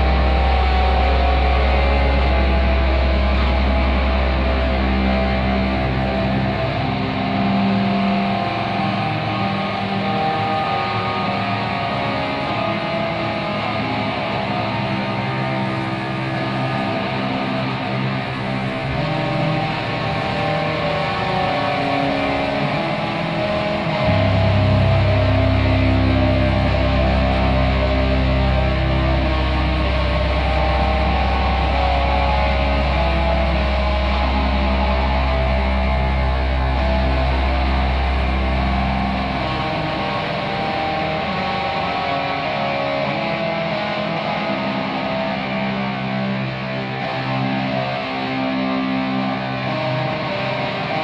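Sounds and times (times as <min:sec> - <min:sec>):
distorted electric guitars: 0:00.0 - 0:51.0.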